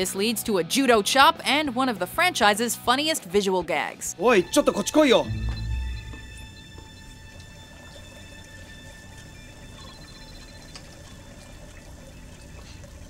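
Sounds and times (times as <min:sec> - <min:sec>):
faint held music notes: 0:04.4 - 0:08.2
man urinating into water: 0:07.2 - 0:13.0.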